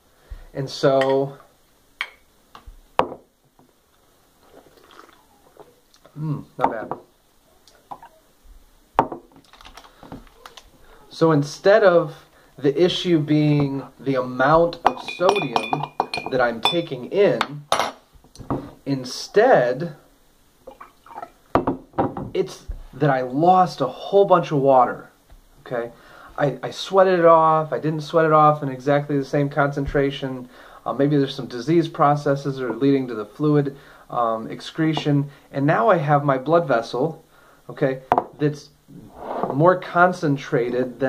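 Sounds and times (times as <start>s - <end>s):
pitcher knocking on wooden table: 3.0s - 3.2s
water pouring into a glass: 4.4s - 5.7s
glass tumblers clinking: 14.8s - 16.9s.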